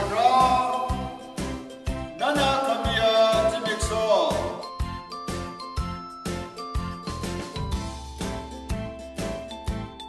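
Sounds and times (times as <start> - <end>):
tinkling bell-like music with beat: 0.0 - 10.0.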